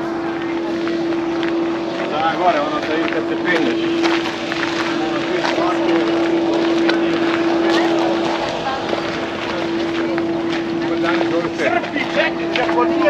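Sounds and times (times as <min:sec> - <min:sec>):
motor humming: 0:00.0 - 0:13.0
people chattering: 0:00.0 - 0:13.0.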